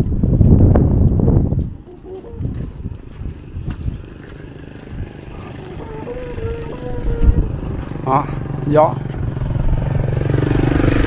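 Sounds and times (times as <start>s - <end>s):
wind buffeting microphone: 0.0s - 11.0s
motorbike engine running: 1.9s - 11.0s.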